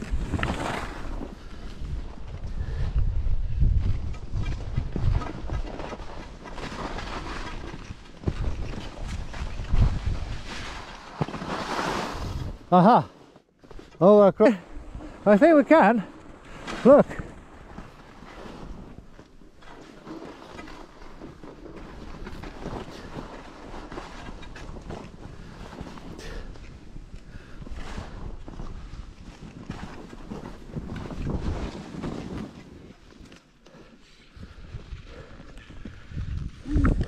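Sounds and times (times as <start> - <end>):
skis sliding through snow: 0.0 - 2.8, 4.4 - 12.7, 14.1 - 33.4
wind rushing over microphone: 0.0 - 5.7, 8.2 - 10.8, 34.4 - 37.0.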